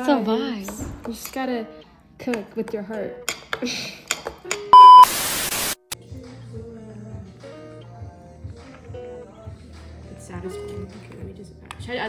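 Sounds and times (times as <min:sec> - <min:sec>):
loud electronic beep: 0:04.8 - 0:05.8
static-like hiss: 0:04.8 - 0:06.0.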